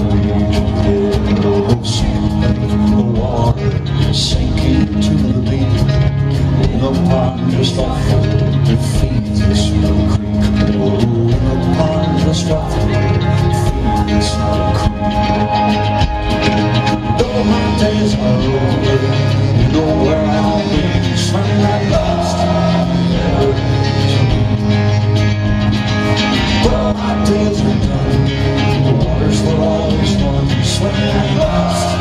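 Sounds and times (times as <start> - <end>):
rock band playing live: 0.0 - 32.0.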